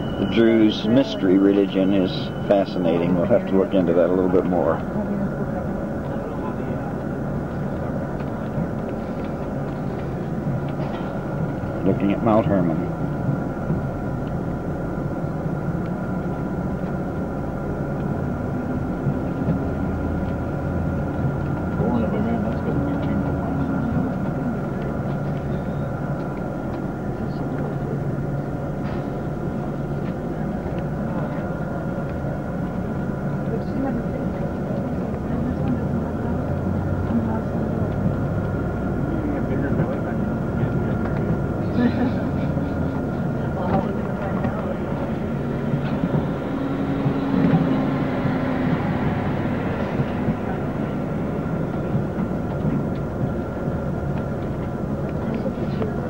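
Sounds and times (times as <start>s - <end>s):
faint voices: 0.0s - 13.9s, 17.9s - 56.0s
vehicle engine and road noise: 0.0s - 56.0s.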